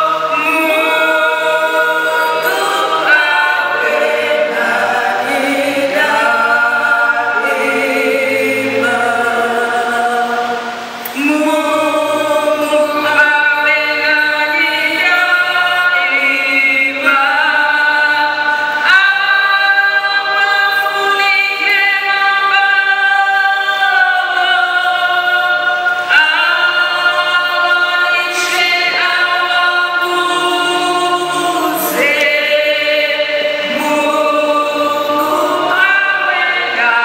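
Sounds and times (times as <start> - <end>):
choir singing a hymn: 0.0 - 37.0.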